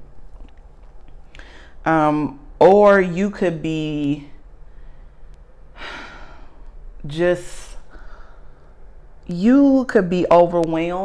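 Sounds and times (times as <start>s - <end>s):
woman sighing: 5.7s - 6.7s.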